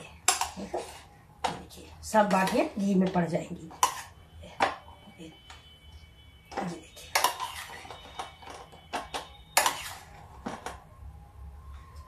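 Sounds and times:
faint metallic ringing: 1.1s - 12.0s
spoon clinking on steel bowl: 6.8s - 10.0s.

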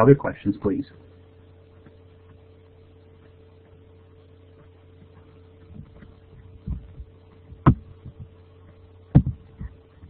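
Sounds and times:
low electrical hum: 0.0s - 10.0s
dull thumps: 4.5s - 10.0s.

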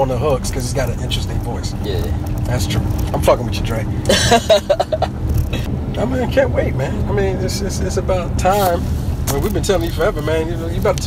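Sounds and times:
car cabin rumble: 0.0s - 11.0s
man laughing: 4.0s - 5.3s.

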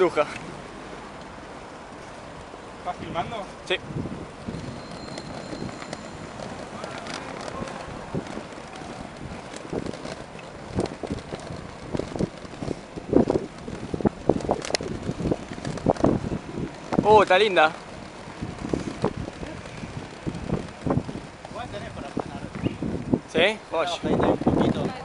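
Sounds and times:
skate wheels rolling on pavement: 0.0s - 25.0s
wind on microphone: 3.0s - 25.0s
clacks and knocks: 4.6s - 22.6s.

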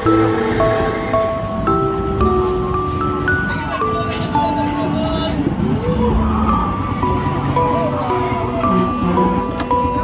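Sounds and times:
background music: 0.0s - 10.0s
streetcar rolling past: 0.0s - 10.0s.

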